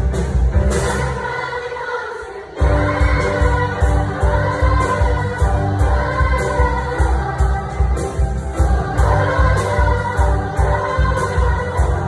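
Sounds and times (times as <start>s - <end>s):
girls' choir singing: 0.6s - 12.0s.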